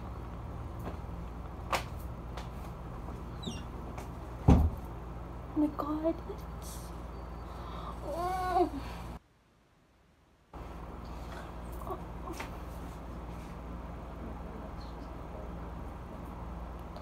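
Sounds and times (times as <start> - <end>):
steady low hum: 0.0 - 17.0
loud thump: 4.4 - 4.8.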